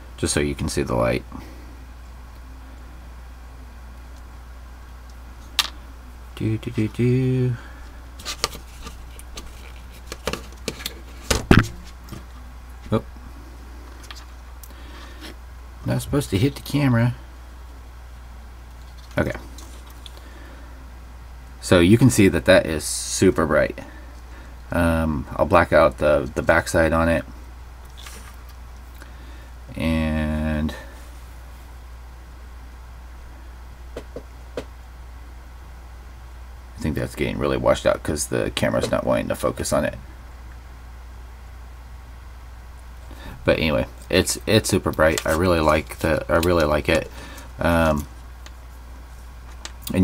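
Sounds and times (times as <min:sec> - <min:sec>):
low hum: 0:00.0 - 0:50.0.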